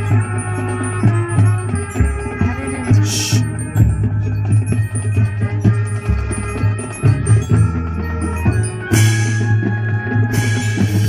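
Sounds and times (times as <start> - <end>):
drum strokes: 0.0 - 11.0
marching band playing: 0.0 - 11.0.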